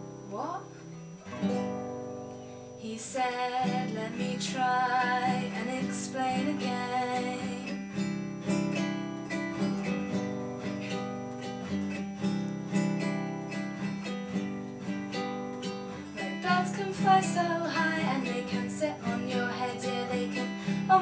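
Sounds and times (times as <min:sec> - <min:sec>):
classical guitar strummed: 0:00.0 - 0:21.0.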